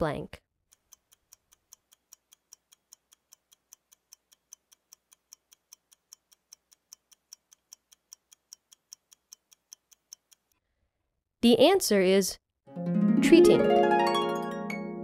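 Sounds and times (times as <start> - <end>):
ticking clock: 0.7 - 10.6.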